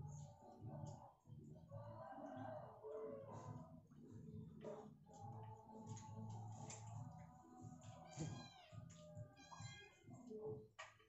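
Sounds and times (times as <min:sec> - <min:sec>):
high-pitched animal cries: 0:08.1 - 0:10.1.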